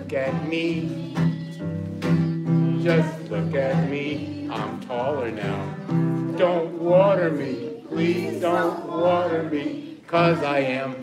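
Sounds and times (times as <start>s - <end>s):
acoustic guitar strumming chords: 0.0s - 11.0s
person singing: 0.0s - 11.0s.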